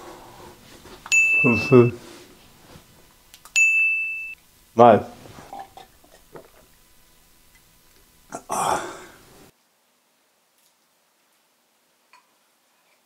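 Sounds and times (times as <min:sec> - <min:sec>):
bright bell-like ding: 0:03.6 - 0:04.4.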